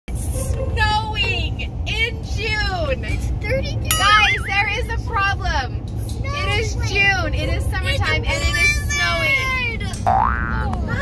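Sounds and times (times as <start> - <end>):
road rumble inside car: 0.1 - 11.0
excited high-pitched voices: 3.4 - 5.0.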